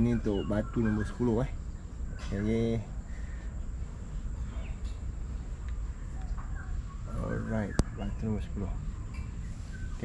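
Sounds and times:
faint bird chirps: 0:00.0 - 0:10.0.

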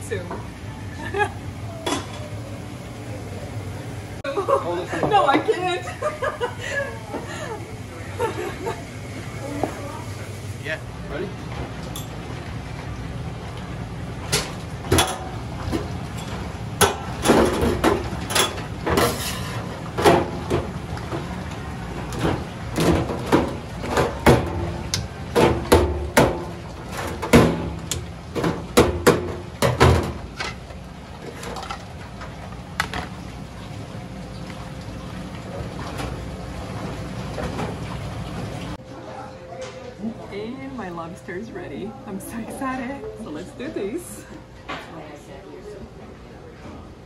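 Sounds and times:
kitchenware clink: 0:01.8 - 0:02.3.

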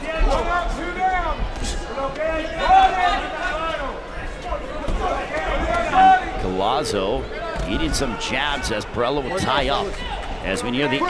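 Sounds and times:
arena background noise: 0:00.0 - 0:11.0
men talking: 0:00.0 - 0:11.0.

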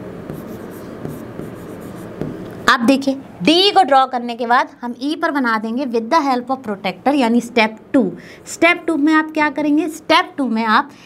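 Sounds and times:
marker writing on whiteboard: 0:00.0 - 0:02.6.

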